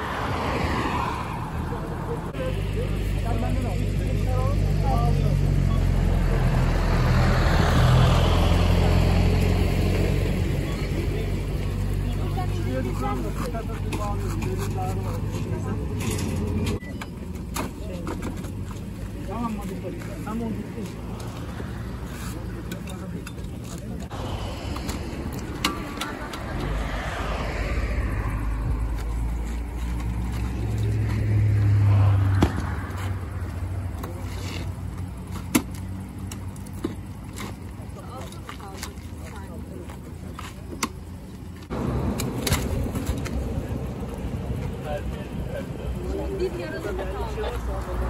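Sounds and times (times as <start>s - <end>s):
vehicle engine rumble: 0.0s - 48.0s
steady low rumble: 23.9s - 34.0s.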